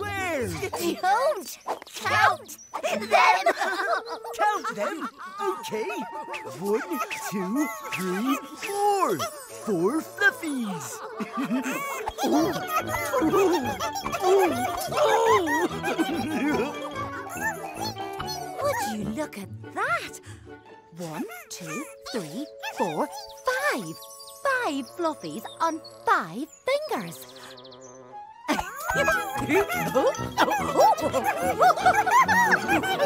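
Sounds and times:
bouncy cartoon music: 0:00.0 - 0:01.4, 0:02.0 - 0:33.0
cartoon creatures squeaking and giggling: 0:00.0 - 0:20.1, 0:21.0 - 0:27.8, 0:28.5 - 0:33.0
cartoon creature squeaks: 0:16.5 - 0:18.7.

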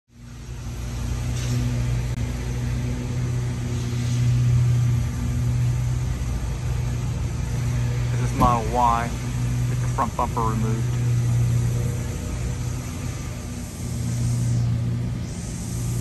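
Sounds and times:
low mechanical hum: 0:00.1 - 0:16.0.

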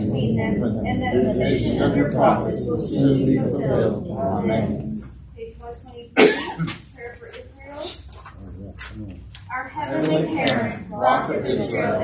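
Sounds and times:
person coughing: 0:06.2 - 0:06.8.

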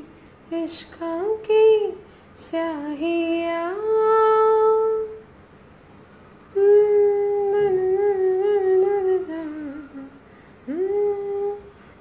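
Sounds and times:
woman humming: 0:06.5 - 0:11.8.

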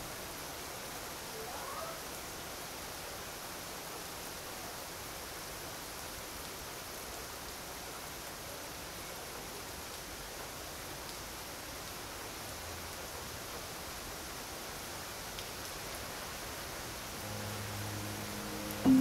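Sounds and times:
rain falling steadily: 0:00.0 - 0:19.0.

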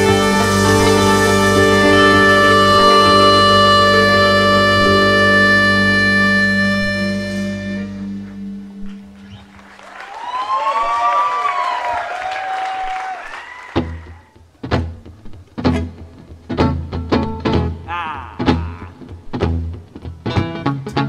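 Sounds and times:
guitars bass and drums strokes: 0:00.0 - 0:09.6, 0:14.6 - 0:21.0
high sliding tones: 0:00.0 - 0:09.6
band chord ringing: 0:00.0 - 0:09.7.

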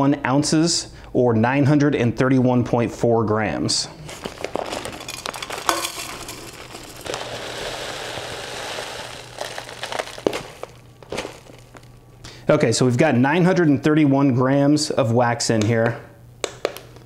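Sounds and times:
paper bag crinkling: 0:04.0 - 0:12.2
wax flakes pouring: 0:04.0 - 0:12.2.

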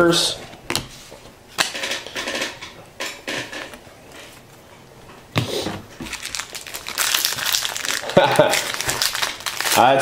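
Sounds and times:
card pack wrapper crinkling: 0:06.0 - 0:10.0.

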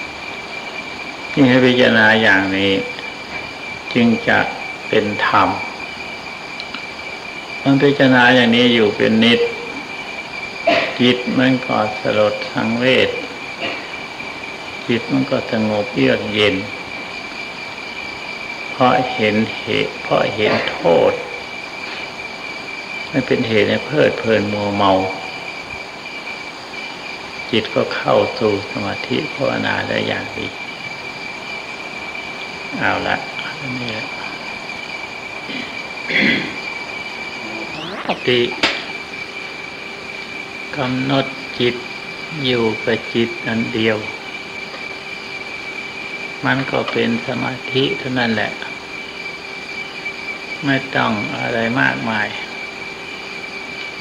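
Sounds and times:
high-pitched whine: 0:00.0 - 0:31.0, 0:32.3 - 0:54.0
tape hiss: 0:00.0 - 0:54.0
man speaking: 0:01.4 - 0:03.0, 0:03.9 - 0:05.7, 0:07.7 - 0:09.6, 0:11.0 - 0:13.3, 0:14.9 - 0:16.7, 0:18.8 - 0:21.3, 0:23.2 - 0:25.2, 0:32.8 - 0:34.3, 0:37.4 - 0:38.6, 0:46.4 - 0:48.6.

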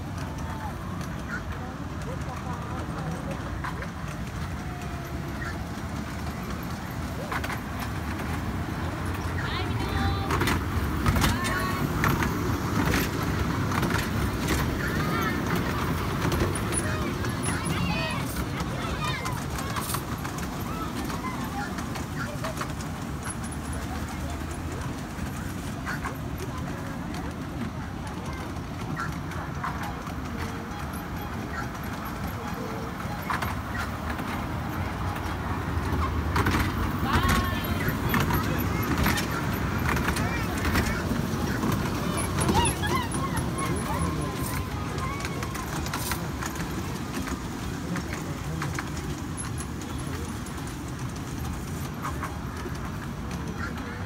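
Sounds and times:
children chattering: 0:00.0 - 0:54.0
ride train rumbling on track: 0:00.0 - 0:54.0.

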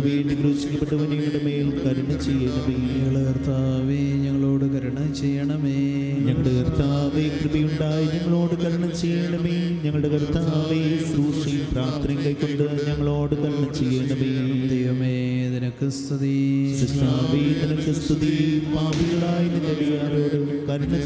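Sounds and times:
men chanting prayer: 0:00.0 - 0:21.0.

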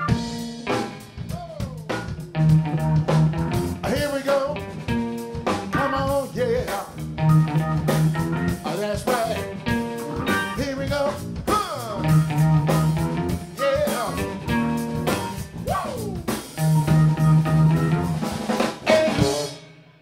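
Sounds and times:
drum kit: 0:00.0 - 0:20.0
electric guitar lead: 0:00.0 - 0:20.0.

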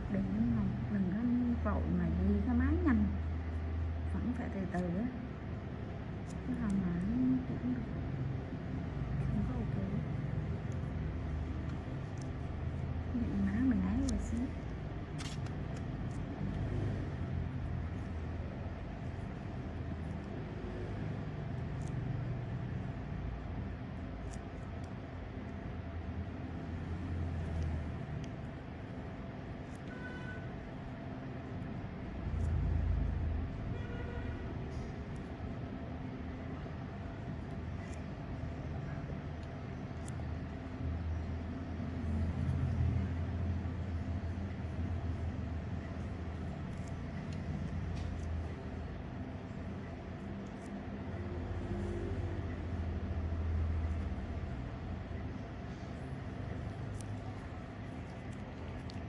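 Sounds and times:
low steady rumble: 0:00.0 - 0:59.0.

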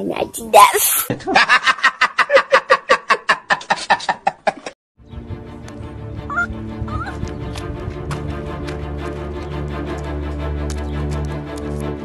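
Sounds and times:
music with sustained low notes: 0:05.0 - 0:12.0.

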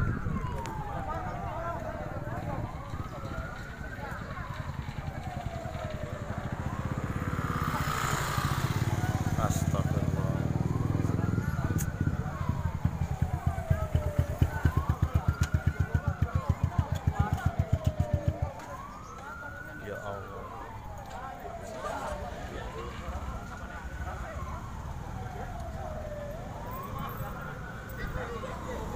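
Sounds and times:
siren wailing: 0:00.0 - 0:28.9.

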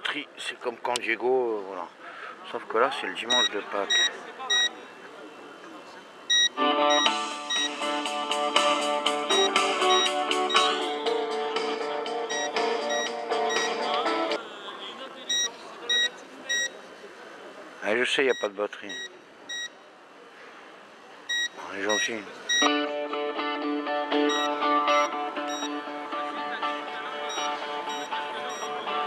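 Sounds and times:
short high electronic beeps: 0:03.3 - 0:04.7, 0:06.3 - 0:07.7, 0:09.3 - 0:10.8, 0:12.3 - 0:13.7, 0:15.3 - 0:16.7, 0:24.3 - 0:25.7, 0:27.3 - 0:28.8
electronic tune with held notes: 0:06.3 - 0:14.4, 0:24.0 - 0:26.3, 0:27.2 - 0:29.0.

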